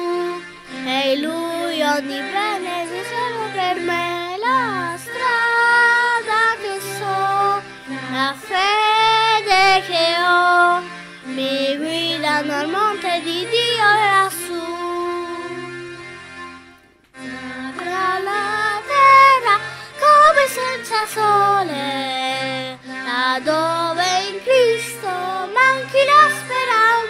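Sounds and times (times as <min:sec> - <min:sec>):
instrumental backing: 0:00.0 - 0:27.0.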